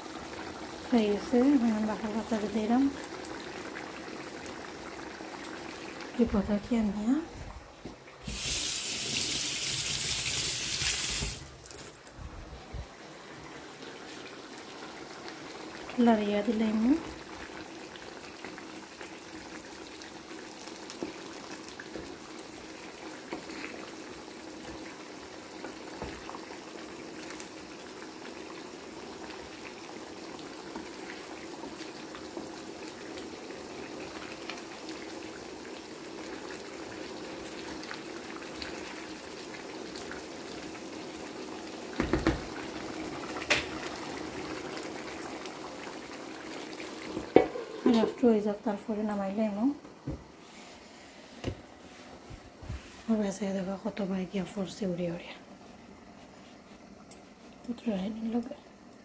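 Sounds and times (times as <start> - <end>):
stew bubbling in a pan: 0.0 - 59.0
watery hiss of liquid: 8.2 - 11.5.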